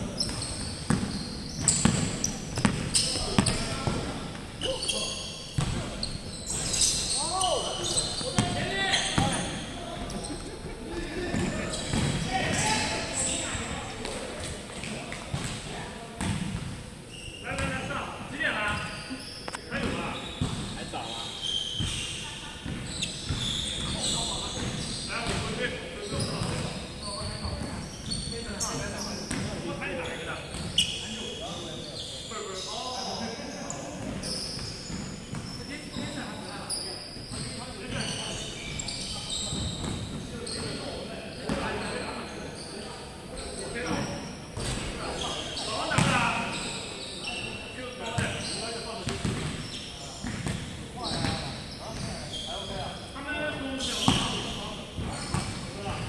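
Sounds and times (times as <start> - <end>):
players calling out: 6.0 - 13.6.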